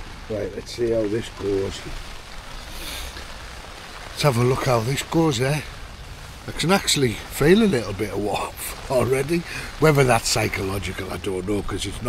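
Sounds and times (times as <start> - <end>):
rain on tent fabric: 0.0 - 12.0.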